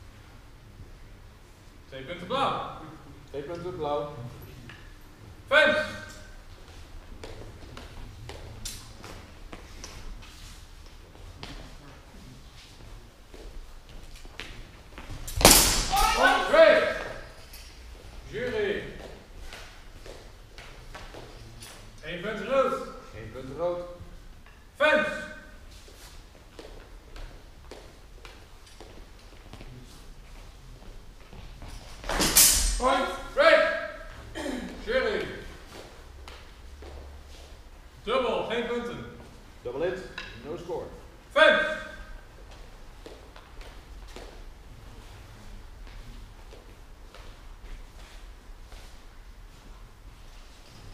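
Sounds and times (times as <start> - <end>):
low hum of hall: 0.0 - 50.9
footsteps on hall floor: 6.0 - 22.0, 25.6 - 32.9, 35.0 - 38.0, 41.7 - 50.9
person shouting: 15.8 - 17.2.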